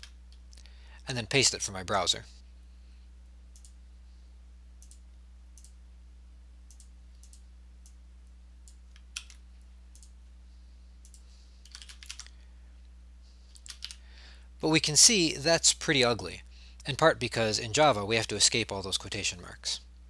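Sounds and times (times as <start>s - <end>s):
low steady hum: 0.0s - 20.0s
computer mouse clicks: 3.5s - 3.8s, 4.8s - 5.0s, 6.7s - 8.0s, 8.7s - 10.2s, 11.0s - 12.3s.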